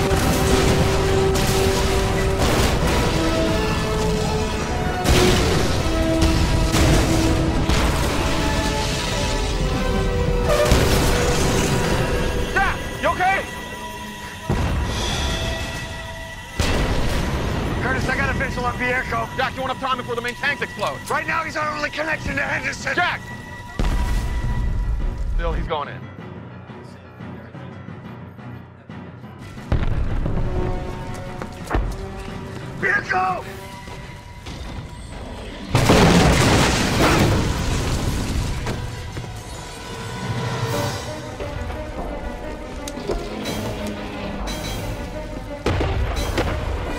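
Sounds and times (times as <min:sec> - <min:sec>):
low rumble of explosions and fire: 0:00.0 - 0:27.5, 0:29.4 - 0:46.9
film score with held notes: 0:00.0 - 0:46.9.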